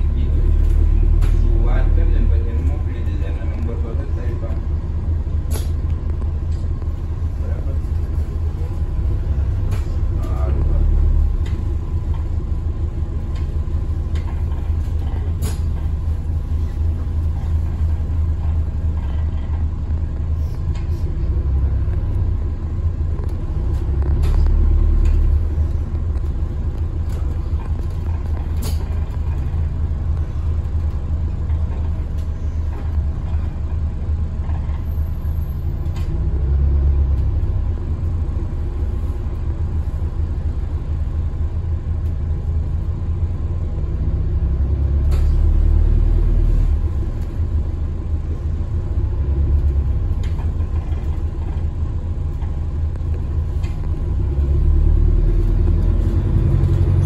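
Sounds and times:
bus engine and road rumble: 0.0s - 57.0s
rattling bus fittings: 5.3s - 7.2s, 11.3s - 21.2s, 23.2s - 35.0s, 49.7s - 54.0s.

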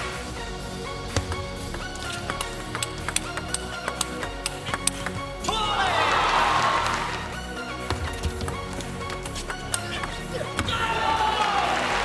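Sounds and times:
background music: 0.0s - 12.0s
table tennis ball strike: 2.0s - 5.2s
player shouting: 5.4s - 7.2s, 9.8s - 12.0s.

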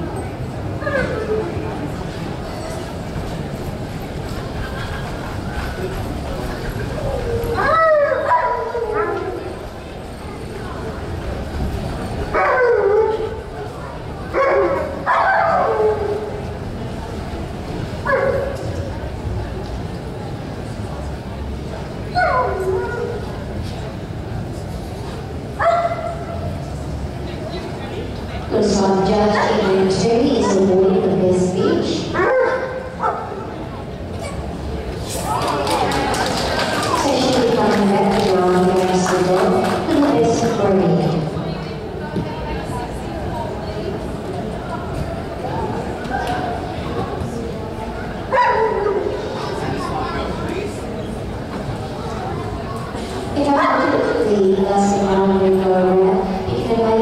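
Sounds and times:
dog howling yips: 7.1s - 9.4s.

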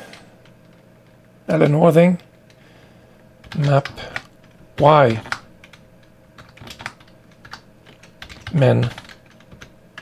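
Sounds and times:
computer keyboard typing: 3.4s - 10.0s.

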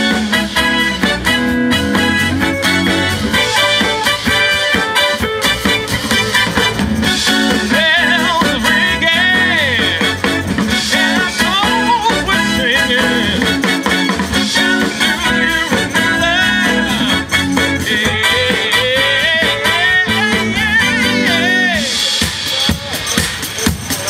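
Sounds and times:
electric guitar: 0.0s - 22.1s
drum kit beat: 0.0s - 24.0s
keyboards: 0.0s - 24.0s
person singing lead vocals: 7.2s - 22.2s.

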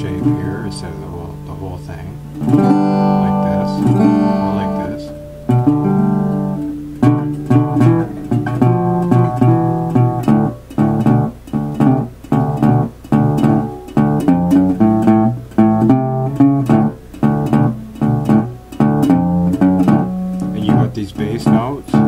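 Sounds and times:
resonator guitar slide picking: 0.0s - 22.0s.

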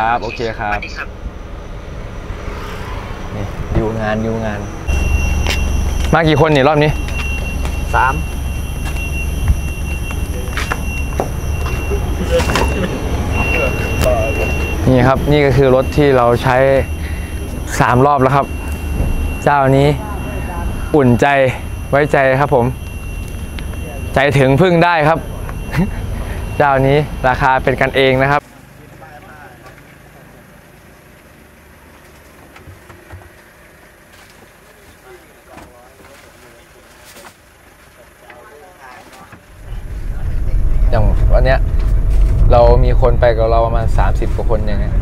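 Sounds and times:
faint voices: 0.0s - 1.2s, 19.4s - 22.8s, 34.2s - 41.7s
thin high whine: 0.0s - 28.4s, 34.2s - 45.0s
diesel engine idling: 0.0s - 35.9s, 39.4s - 45.0s
low steady outdoor hum: 0.0s - 45.0s.

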